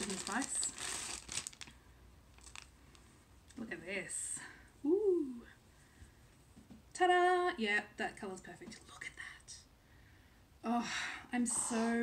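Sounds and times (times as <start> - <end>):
fabric rustling: 0.0 - 1.7, 2.3 - 3.1.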